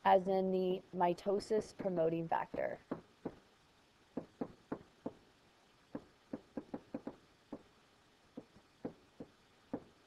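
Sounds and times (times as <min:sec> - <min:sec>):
stylus tapping on tablet screen: 0:06.0 - 0:07.7.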